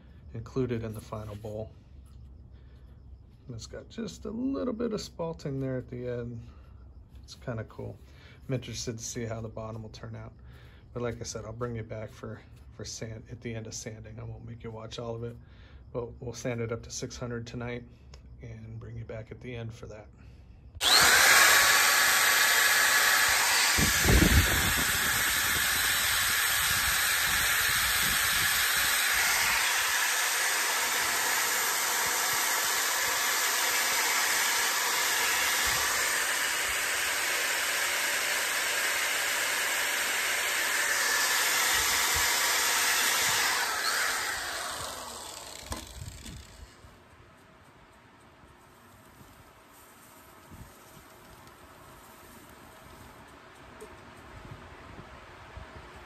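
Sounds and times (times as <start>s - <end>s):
power sander whirring on wood: 20.8s - 46.8s
motor whine: 20.8s - 47.0s.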